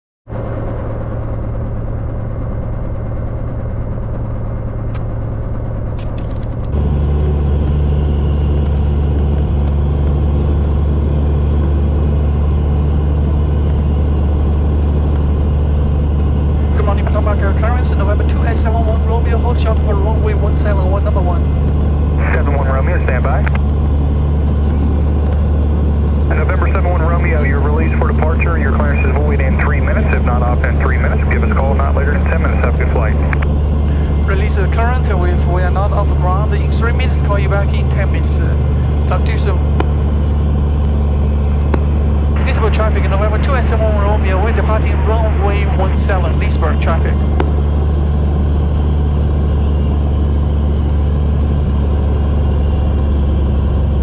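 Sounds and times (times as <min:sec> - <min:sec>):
propeller plane engine drone: 0:00.3 - 0:54.0
radio voices: 0:16.5 - 0:23.7, 0:26.2 - 0:40.0, 0:41.7 - 0:47.6.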